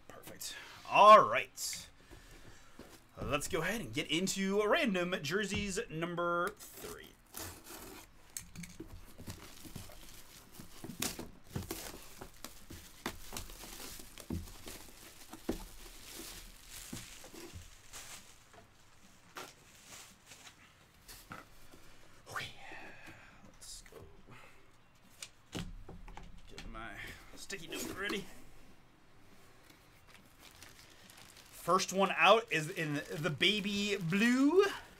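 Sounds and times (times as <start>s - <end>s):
cardboard box tearing: 6.6s - 8.1s.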